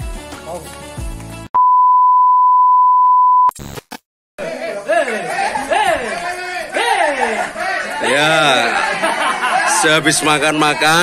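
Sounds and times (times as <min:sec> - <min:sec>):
background music: 0:00.0 - 0:01.5
steady electronic beep: 0:01.6 - 0:03.5
voices: 0:04.4 - 0:11.0.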